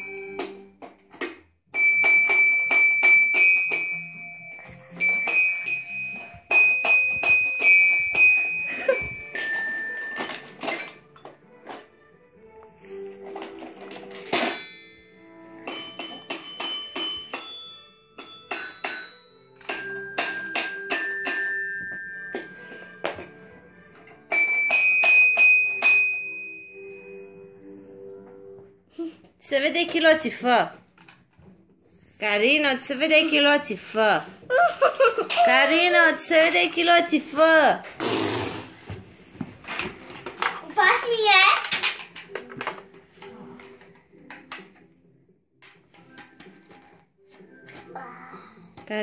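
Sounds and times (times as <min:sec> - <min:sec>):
toy xylophone notes: 0:01.8 - 0:11.4, 0:14.3 - 0:23.2, 0:24.3 - 0:26.8.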